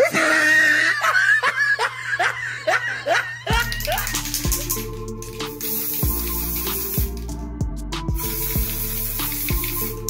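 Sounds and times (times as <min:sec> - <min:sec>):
person laughing hard: 0:00.0 - 0:04.1
background music: 0:02.2 - 0:10.0.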